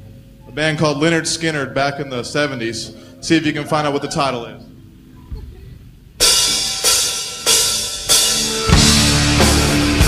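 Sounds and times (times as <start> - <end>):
cymbal crashes: 6.2 - 10.0
heavy metal band playing: 6.2 - 10.0.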